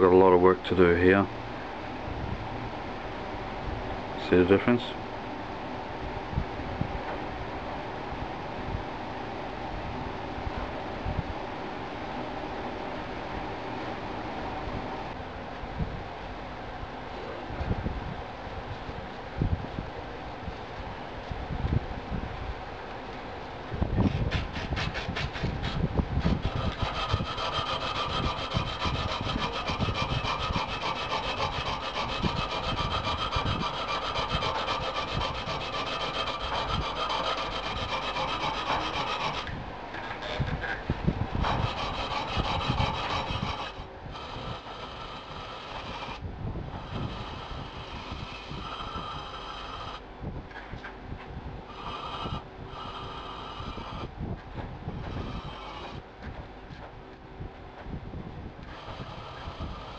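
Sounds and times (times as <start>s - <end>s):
hand file scraping on steel: 24.1s - 40.8s, 41.4s - 46.2s, 46.8s - 50.0s, 51.7s - 54.1s, 55.0s - 56.0s, 58.6s - 59.9s.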